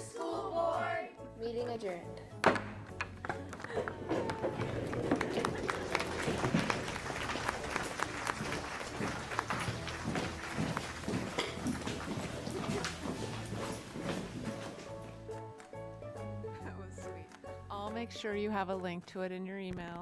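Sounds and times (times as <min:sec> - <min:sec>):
faint music: 0:00.0 - 0:20.0
audience clapping: 0:02.9 - 0:14.0.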